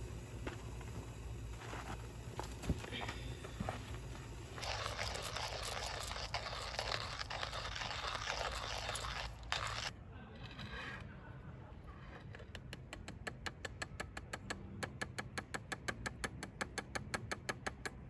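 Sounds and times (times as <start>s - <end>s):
coffee grinder crunching beans: 1.6s - 9.9s.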